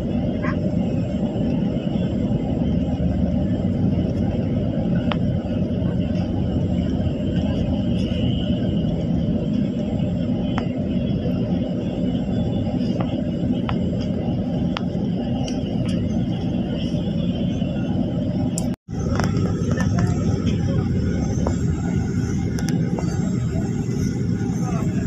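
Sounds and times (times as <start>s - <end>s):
bus engine and road rumble: 0.0s - 25.0s.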